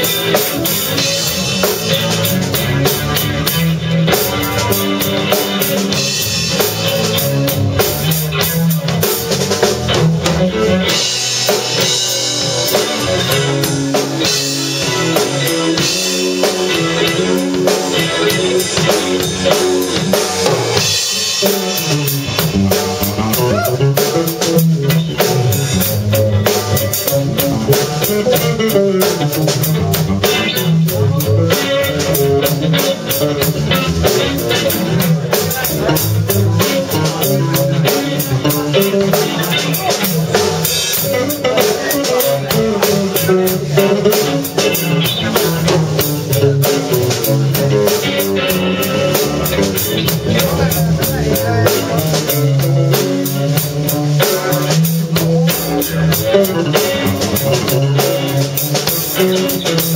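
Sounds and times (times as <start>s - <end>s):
drum kit with cymbals: 0.0s - 59.9s
electric bass: 0.0s - 59.9s
electric guitar: 0.0s - 59.9s.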